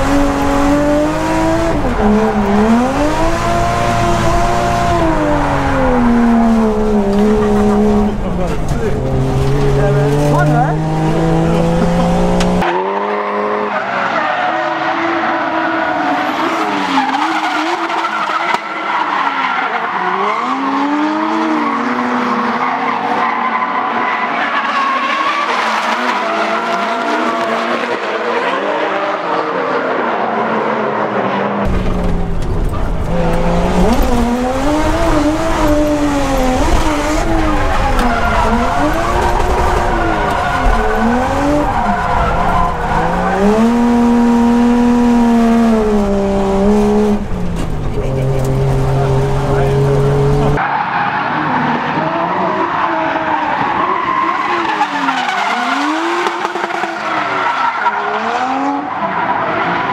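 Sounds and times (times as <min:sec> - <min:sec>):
car engine revving: 0:00.0 - 0:22.6, 0:31.4 - 0:59.9
tyres squealing: 0:33.1 - 0:44.5.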